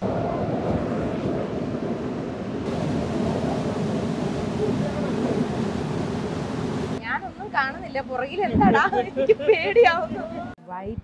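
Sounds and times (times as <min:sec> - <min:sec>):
wind buffeting microphone: 0:00.0 - 0:11.0
waterfall roaring: 0:02.6 - 0:09.2.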